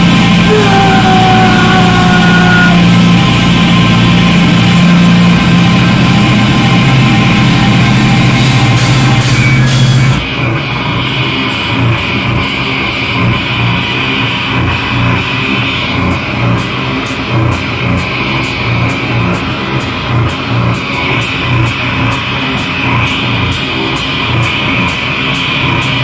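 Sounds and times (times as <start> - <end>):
heavy rock band playing: 0.0 - 26.0.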